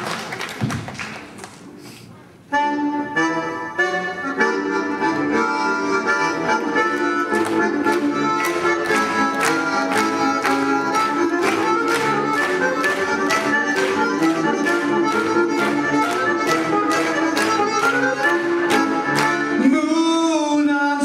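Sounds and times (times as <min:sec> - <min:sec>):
accordion playing chords: 0:02.4 - 0:20.4
sharp rhythmic accents: 0:02.6 - 0:20.2.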